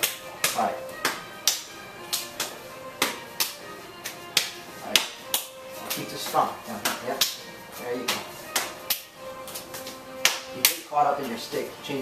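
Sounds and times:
stick striking forearms: 0:00.0 - 0:07.4, 0:08.0 - 0:10.8.

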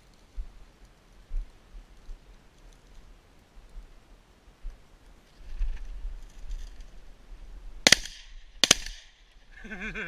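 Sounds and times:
shotgun shots: 0:07.8 - 0:09.2.

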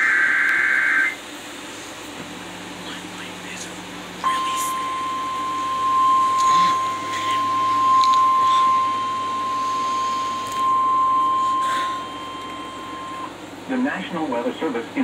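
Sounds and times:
steady alert tone: 0:04.2 - 0:13.4.

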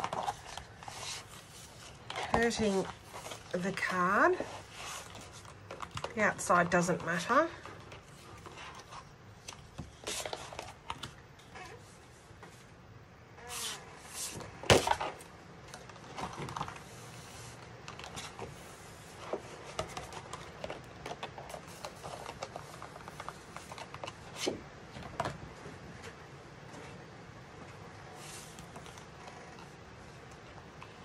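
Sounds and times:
cardstock rustling and flexing: 0:00.0 - 0:12.7, 0:13.4 - 0:27.0.

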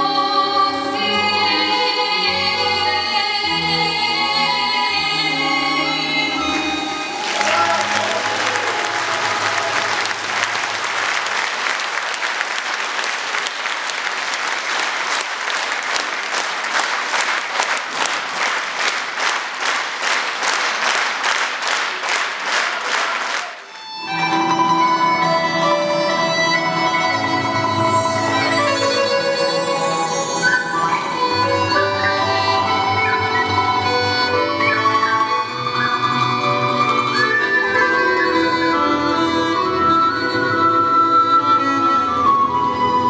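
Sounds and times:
folk instrument ensemble playing: 0:00.0 - 0:11.7, 0:23.6 - 0:43.0
audience applauding: 0:06.4 - 0:39.7
rhythmic clapping in unison: 0:06.6 - 0:25.6, 0:31.0 - 0:38.2.

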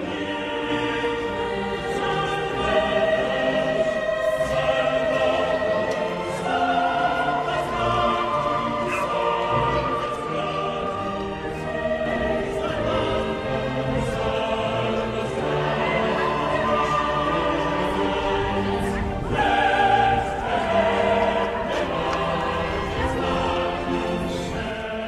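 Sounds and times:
choir singing held notes: 0:00.0 - 0:25.0.

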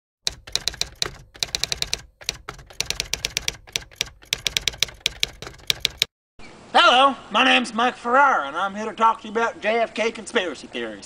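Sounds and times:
typewriter keys clacking: 0:00.2 - 0:06.1.

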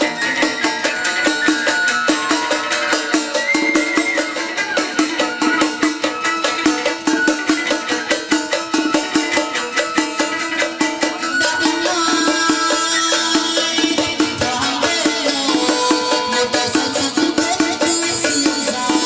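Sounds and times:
fast even percussion: 0:00.0 - 0:19.0
ritual music melody: 0:00.0 - 0:19.0.

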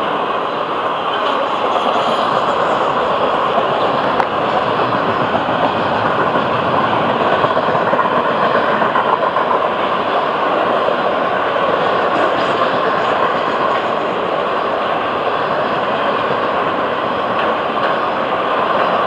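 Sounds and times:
freight train wheels rolling on rail: 0:00.0 - 0:19.0.

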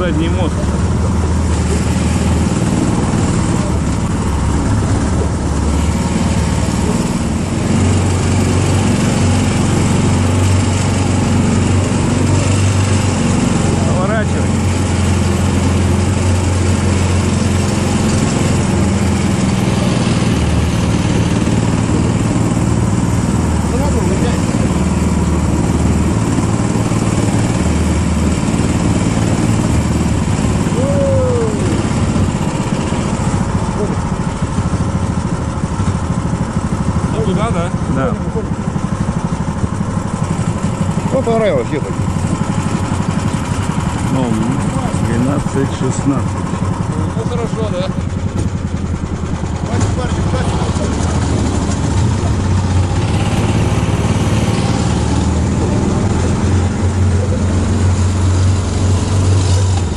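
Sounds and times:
vehicle engine running under load: 0:00.0 - 0:59.9.

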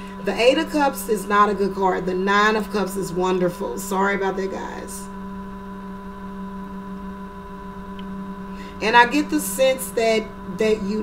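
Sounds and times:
steady hum of held tones: 0:00.0 - 0:11.0.

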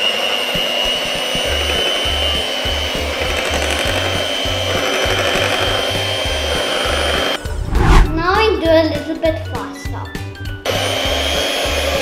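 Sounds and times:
electric hand mixer whining: 0:00.0 - 0:07.5, 0:10.7 - 0:12.0.

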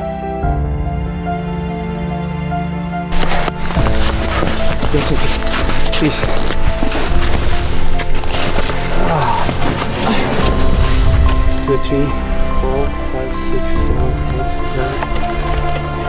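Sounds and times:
background music: 0:00.0 - 0:16.0
boots crunching through snow: 0:03.1 - 0:11.7.

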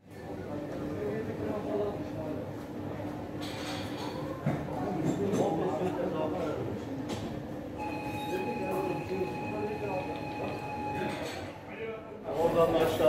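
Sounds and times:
people talking: 0:08.2 - 0:13.0.

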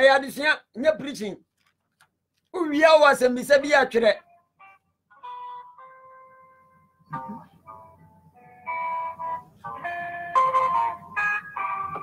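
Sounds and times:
man speaking: 0:00.0 - 0:01.4, 0:02.6 - 0:04.2
electronic musical tones: 0:04.2 - 0:12.0.

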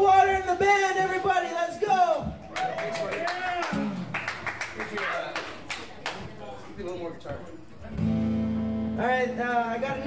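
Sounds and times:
bar audience voices: 0:00.0 - 0:10.0
scattered hand claps: 0:02.4 - 0:06.3.

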